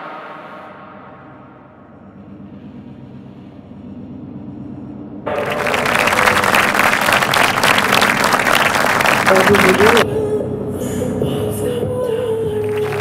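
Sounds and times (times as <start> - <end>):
low musical drone: 0.0 - 13.0
audience applause: 5.3 - 10.0, 12.7 - 13.0.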